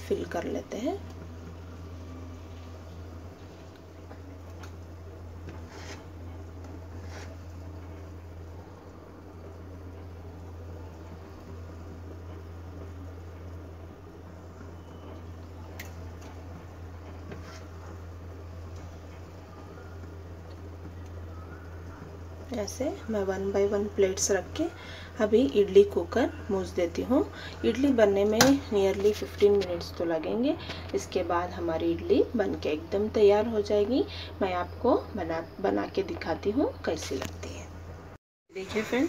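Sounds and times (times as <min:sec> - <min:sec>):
low background hum: 0:00.0 - 0:39.0.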